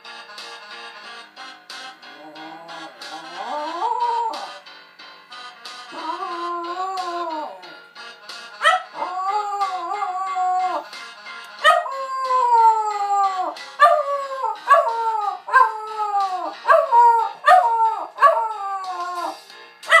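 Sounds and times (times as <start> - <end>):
music: 0.0 - 20.0
dog howling: 2.2 - 4.5, 5.9 - 7.7, 8.6 - 10.9, 11.6 - 20.0.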